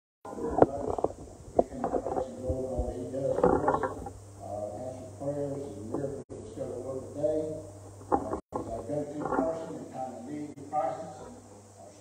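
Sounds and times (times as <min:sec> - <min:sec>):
indistinct voice: 0:00.3 - 0:12.0.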